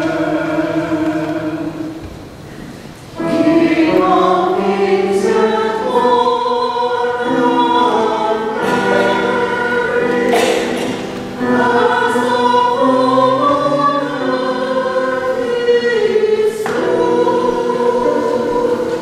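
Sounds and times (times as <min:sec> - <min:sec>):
church choir singing in harmony: 0:00.0 - 0:19.0.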